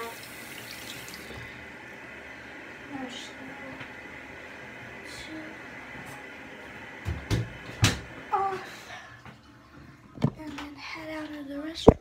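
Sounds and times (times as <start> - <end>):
running water hiss: 0.0 - 1.7.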